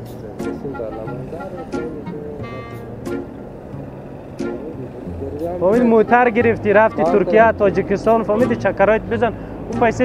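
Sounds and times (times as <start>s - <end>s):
men talking quietly: 0.0s - 10.0s
vehicle noise: 0.0s - 10.0s
short pitched tone: 2.4s - 3.0s.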